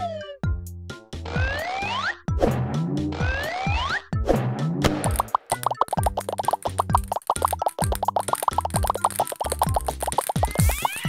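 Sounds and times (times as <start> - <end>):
cartoon plop sound effects: 5.0 - 11.0
bouncy children's music: 5.1 - 11.0.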